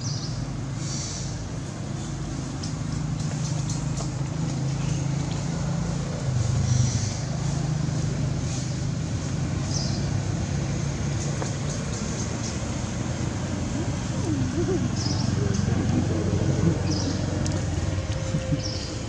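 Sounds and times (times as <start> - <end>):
engine humming: 0.0 - 19.0.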